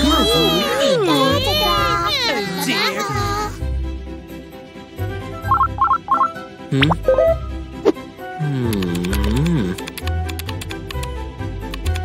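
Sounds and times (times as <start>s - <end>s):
cartoon baby voices squealing: 0.0s - 3.6s.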